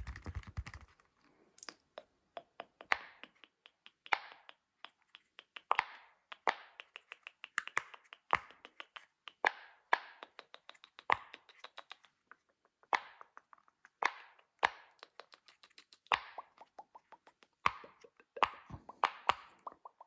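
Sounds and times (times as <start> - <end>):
silicone fidget toy popping: 1.6 - 12.1, 12.8 - 20.0.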